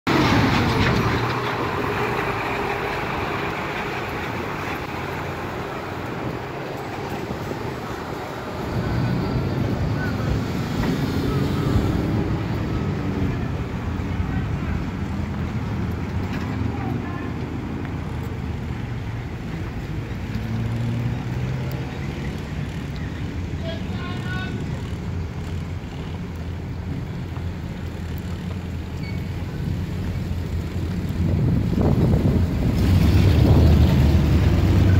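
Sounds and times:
car and truck engines passing: 0:00.0 - 0:34.9.

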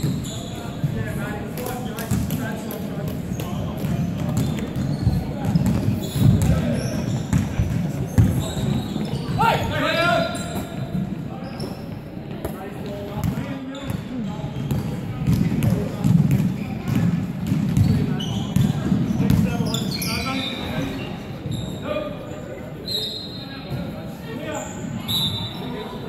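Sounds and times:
basketball bouncing on wooden floor: 0:03.8 - 0:06.6, 0:07.3 - 0:08.4.

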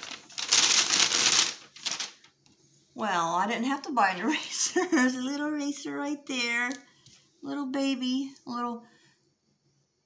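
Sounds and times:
paper bag rustling: 0:00.0 - 0:02.4.

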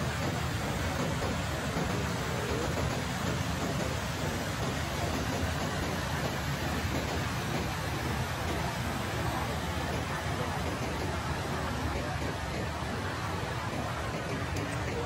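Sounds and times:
water rushing over rocks: 0:00.0 - 0:15.0.

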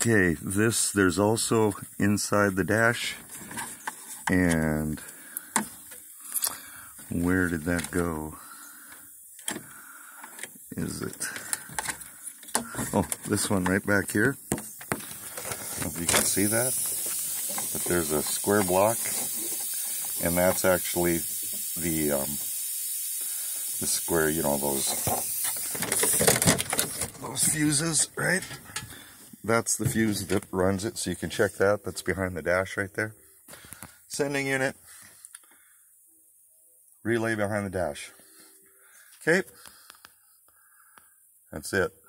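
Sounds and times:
low background hiss: 0:00.0 - 0:42.0.

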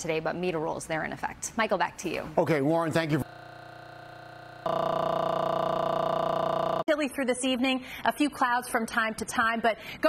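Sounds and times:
buzzing held tone: 0:03.2 - 0:06.9.

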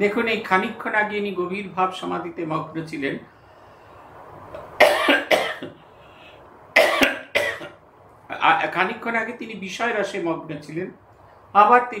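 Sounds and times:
person speaking: 0:00.0 - 0:03.3, 0:08.3 - 0:12.0
person coughing: 0:04.8 - 0:05.8, 0:06.8 - 0:07.8.

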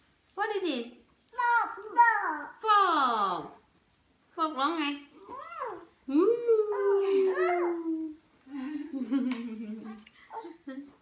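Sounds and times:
toddler vocalizing: 0:01.4 - 0:02.6, 0:05.2 - 0:05.9, 0:06.6 - 0:08.2.

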